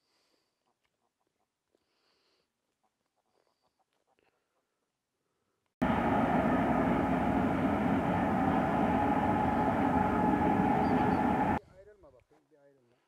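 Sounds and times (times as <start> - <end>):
freight train rumbling: 5.8 - 11.6.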